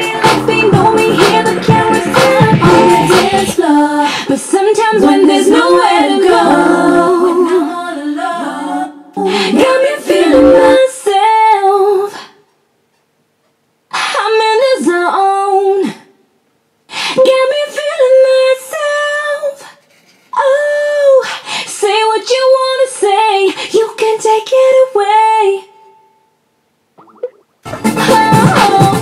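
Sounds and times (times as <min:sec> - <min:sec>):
woman singing a cappella: 0:00.0 - 0:12.5, 0:13.9 - 0:16.2, 0:17.1 - 0:26.2, 0:28.0 - 0:29.0.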